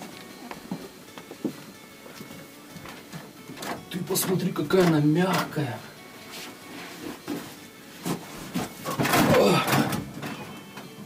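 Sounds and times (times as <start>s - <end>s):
quiet background music: 0.0s - 11.0s
soft knocks and rustles: 6.3s - 9.3s.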